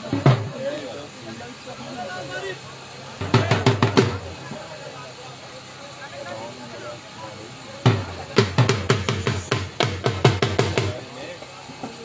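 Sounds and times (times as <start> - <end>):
drum beaten in loud strokes: 0.0 - 0.6, 3.2 - 4.6, 7.8 - 11.1
crowd chatter: 0.0 - 12.0.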